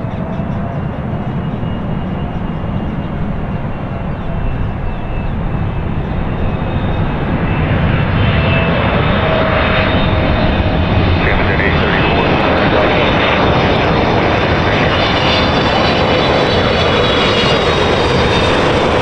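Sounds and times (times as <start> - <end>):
loud jet roar: 0.0 - 19.0.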